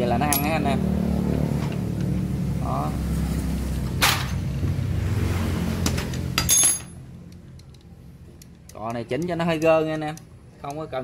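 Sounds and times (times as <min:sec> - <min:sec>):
low road traffic rumble: 0:00.0 - 0:11.0
metal engine parts clinking: 0:00.2 - 0:00.6, 0:05.8 - 0:11.0.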